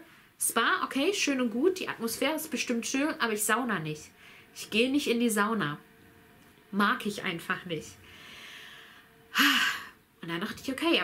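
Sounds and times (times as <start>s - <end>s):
woman breathing in: 4.2s - 4.5s, 8.0s - 10.0s
woman sighing: 9.3s - 10.0s.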